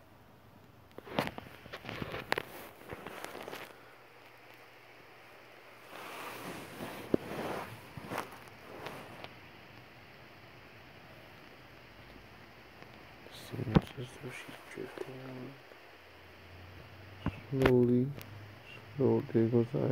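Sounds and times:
rustling and handling noise: 0.9s - 10.0s.

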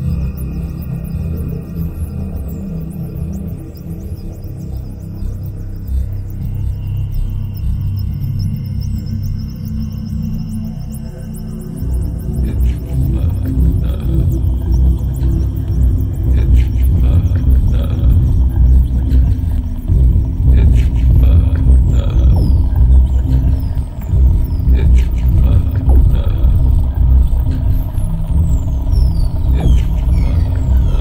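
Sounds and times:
electronic music with heavy bass: 12.2s - 31.0s.

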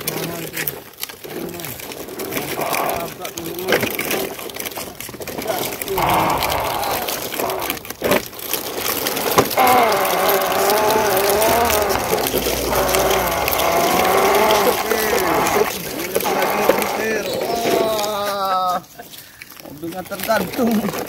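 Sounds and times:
person imitating truck engine: 9.6s - 17.0s.

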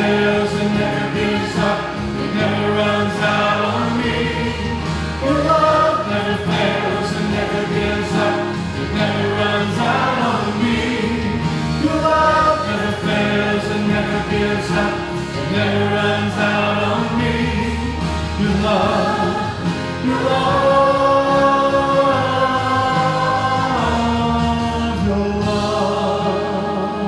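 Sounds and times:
choir and congregation singing: 0.0s - 27.0s
instrumental accompaniment: 0.0s - 27.0s.

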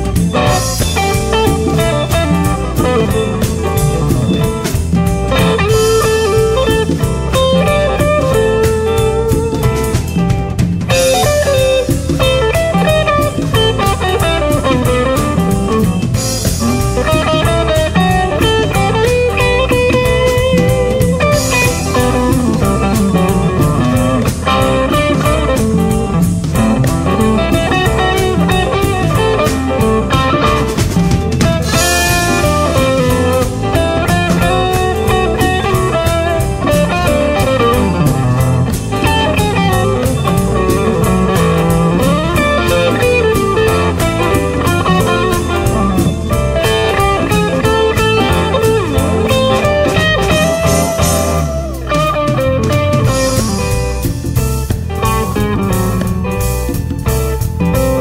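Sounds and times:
drum kit: 0.0s - 58.0s
electric guitar: 0.0s - 58.0s.

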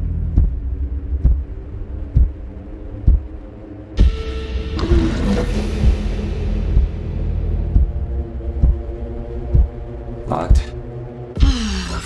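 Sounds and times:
low rumbling drone: 0.0s - 11.5s.

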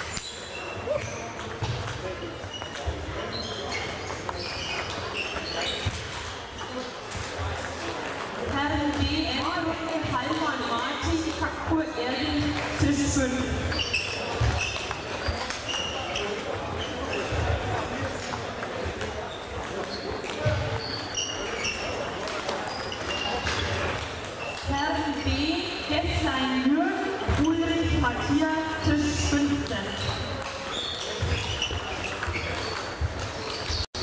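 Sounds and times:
shoes squeaking and stamping: 12.2s - 25.5s, 27.2s - 34.0s.

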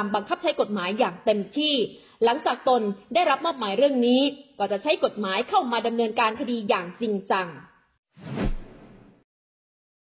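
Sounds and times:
whoosh with low hit: 8.2s - 9.2s.

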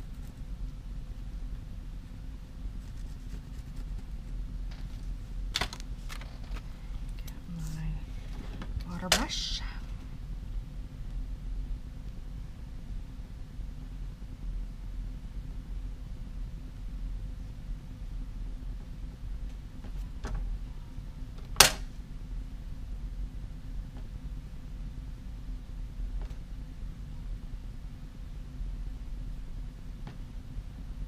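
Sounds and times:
low background hum: 0.0s - 31.0s.

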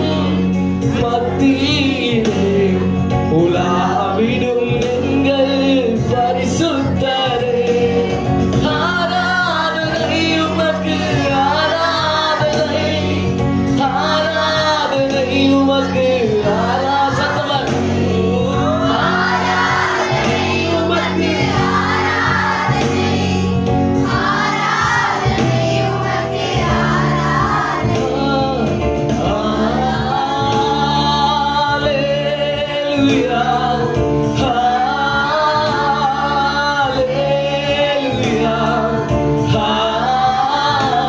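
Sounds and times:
man singing gospel through microphone: 0.0s - 21.7s, 27.9s - 41.0s.

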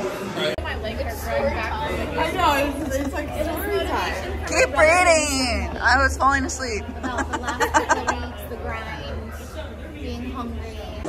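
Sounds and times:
women chatting: 0.6s - 11.0s.

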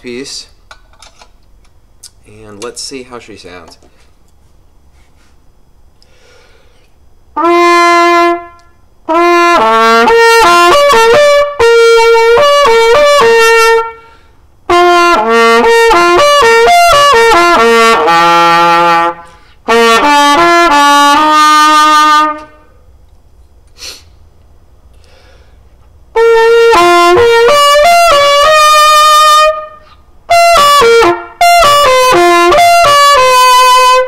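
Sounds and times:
solo trumpet playing: 7.3s - 22.7s, 26.1s - 34.0s.

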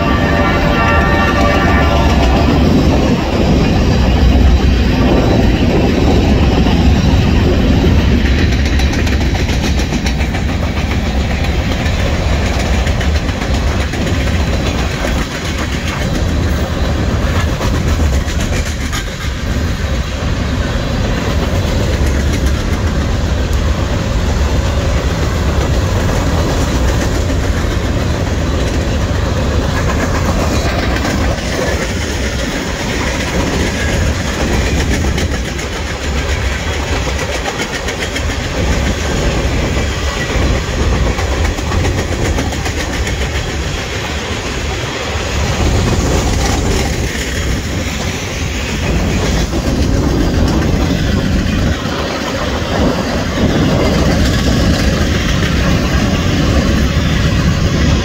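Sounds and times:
clickety-clack over rail joints: 0.0s - 58.0s
train wheels rumbling on rails: 0.0s - 58.0s.

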